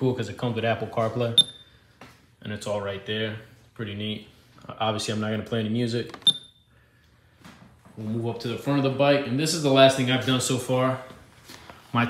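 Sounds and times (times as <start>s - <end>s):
car stereo beep: 1.4s - 1.7s, 6.2s - 6.6s.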